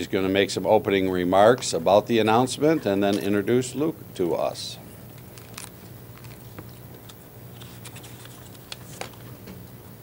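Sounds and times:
steady low hum: 0:00.0 - 0:10.0
faint clicks and rustles: 0:05.1 - 0:09.6.

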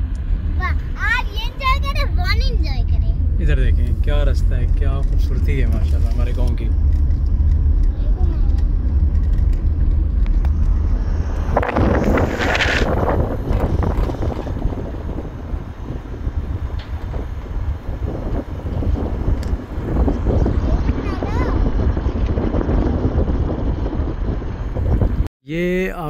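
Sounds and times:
rush of noise: 0:00.0 - 0:25.2
vehicle rumble: 0:00.0 - 0:25.3
wind buffeting microphone: 0:00.0 - 0:25.3.

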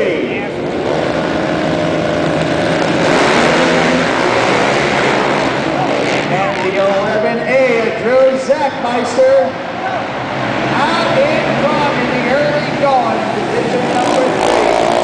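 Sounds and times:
quad engines revving and accelerating: 0:00.0 - 0:08.5, 0:10.2 - 0:15.0.

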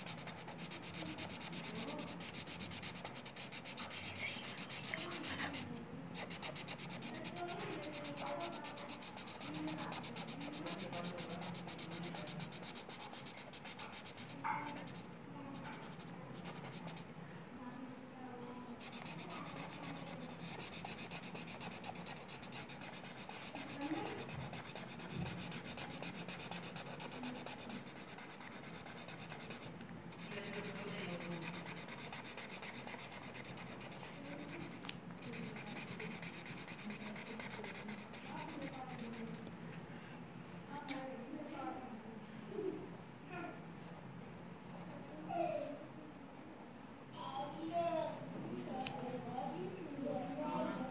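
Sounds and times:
marker scribbling on paper: 0:00.0 - 0:17.1, 0:18.8 - 0:39.4.

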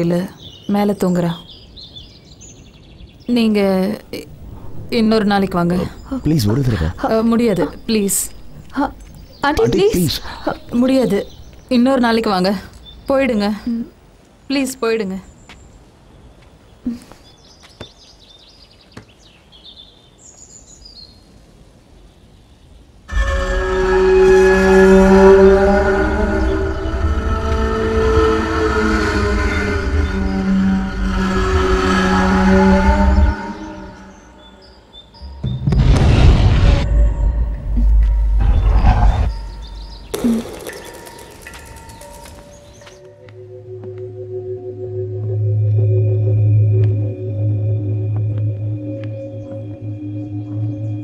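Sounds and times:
deep low rumble: 0:23.1 - 0:34.1, 0:35.3 - 0:40.3
horror film score chords: 0:23.1 - 0:51.0
faint bird chirps: 0:37.0 - 0:43.1.

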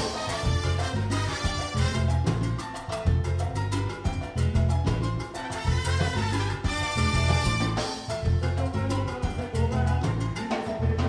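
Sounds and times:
trombone and trumpets: 0:00.0 - 0:02.6, 0:05.4 - 0:08.3
repeating bass line: 0:00.0 - 0:11.0
steady latin percussion: 0:00.0 - 0:11.0.

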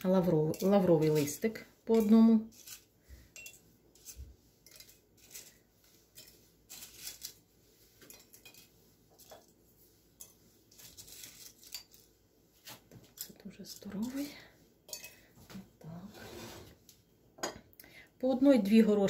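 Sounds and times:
dried leaves rustling: 0:04.0 - 0:09.5, 0:10.7 - 0:14.3.

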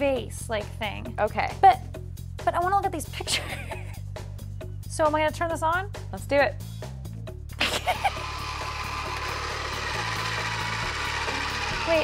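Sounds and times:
small motor whirring: 0:07.6 - 0:12.0.

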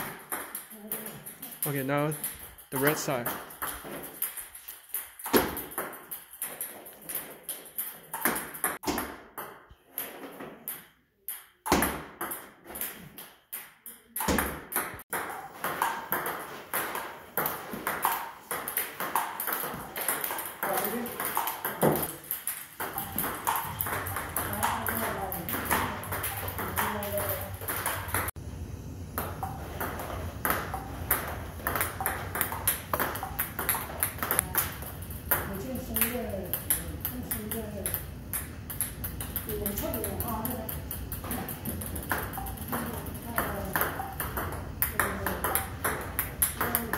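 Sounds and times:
table tennis ball clicking: 0:11.3 - 0:28.3, 0:29.3 - 0:46.9
low steady hum: 0:20.6 - 0:46.9.

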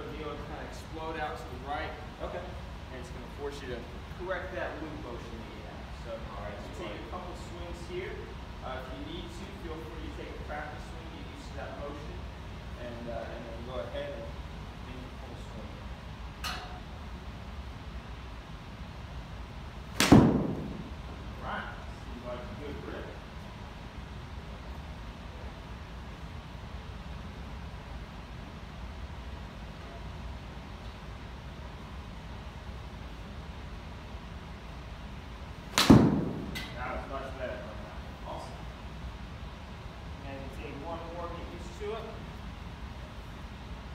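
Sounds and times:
golf club striking ball: 0:19.9 - 0:20.9, 0:35.7 - 0:36.8.

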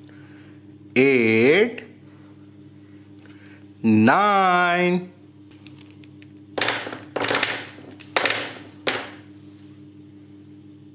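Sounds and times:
plastic pens clattering on paper: 0:05.6 - 0:09.2.

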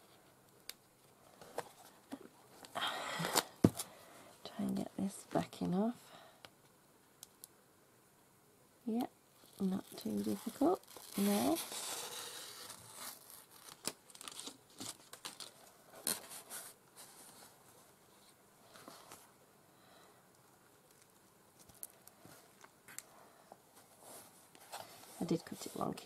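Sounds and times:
paper and fabric rustling: 0:09.4 - 0:17.6.

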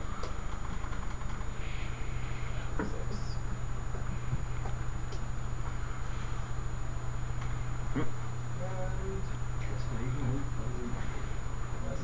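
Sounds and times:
low hum of room equipment: 0:00.0 - 0:12.0.

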